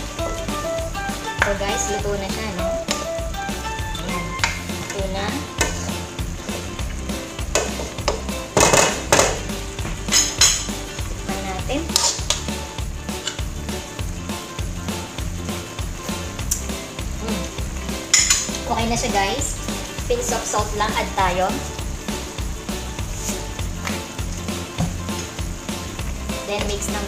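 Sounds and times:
background music with steady beat: 0.0s - 27.0s
utensil scraping and clanking wok: 1.2s - 27.0s.

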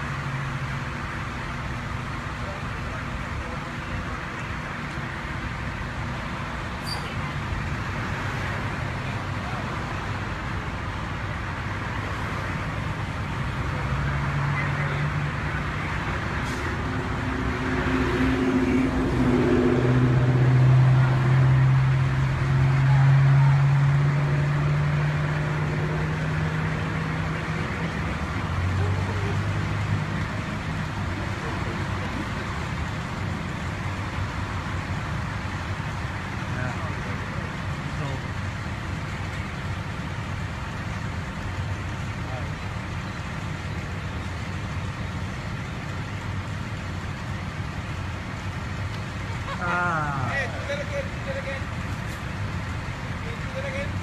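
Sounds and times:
steady traffic noise: 0.0s - 54.0s
car engine humming past: 11.4s - 54.0s.

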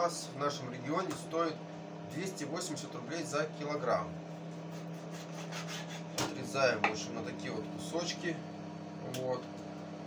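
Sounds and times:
microwave oven hum: 0.0s - 10.0s
knife sawing through raw meat: 4.5s - 6.2s.

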